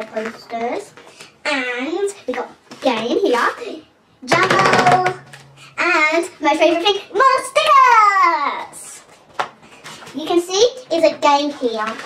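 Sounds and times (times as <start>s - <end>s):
girl singing wordlessly: 4.2s - 5.2s.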